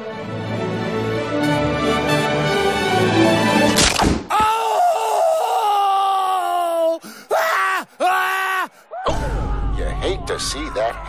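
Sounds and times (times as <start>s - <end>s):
short pained cries: 4.3s - 9.1s
groan of pain: 4.3s - 10.6s.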